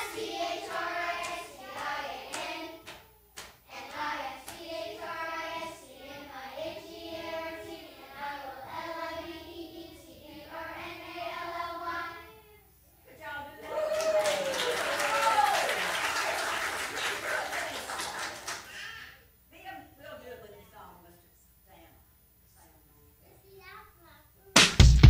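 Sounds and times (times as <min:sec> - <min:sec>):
children singing together: 0:00.0 - 0:12.5.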